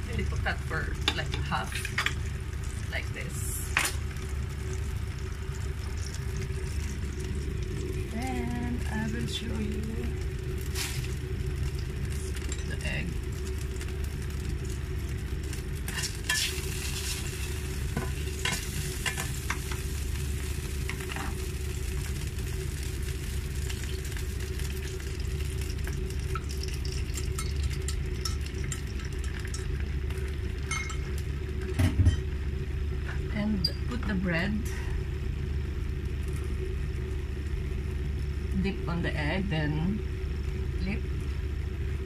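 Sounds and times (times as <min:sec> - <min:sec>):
egg sizzling in a frying pan: 0:00.0 - 0:42.0
steady low hum: 0:00.0 - 0:42.0.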